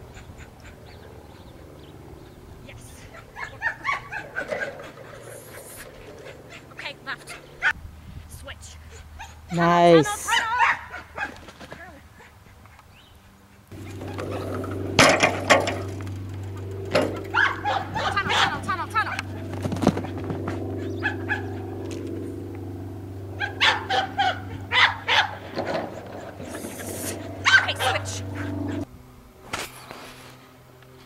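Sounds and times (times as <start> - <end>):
steady low hum: 0.0 - 31.0
dog yipping and whining: 3.0 - 7.8, 10.3 - 11.4, 17.3 - 18.6, 20.8 - 21.6, 23.4 - 28.9.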